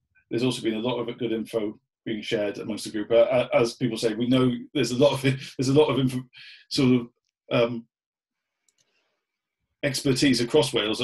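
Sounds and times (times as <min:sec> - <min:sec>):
man speaking: 0:00.3 - 0:07.8, 0:09.8 - 0:11.0
faint ticks: 0:08.6 - 0:08.9.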